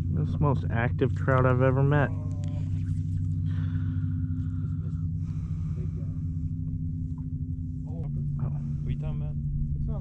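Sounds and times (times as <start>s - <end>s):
low hum with rumble: 0.0s - 10.0s.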